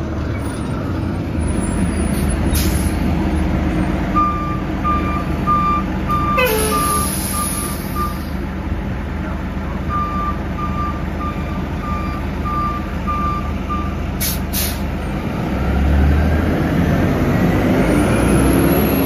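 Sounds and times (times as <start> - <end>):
diesel bus idling: 0.0 - 19.0
air brake hiss: 2.5 - 3.0, 6.5 - 8.4, 14.2 - 14.9
warning beeper: 4.2 - 8.3.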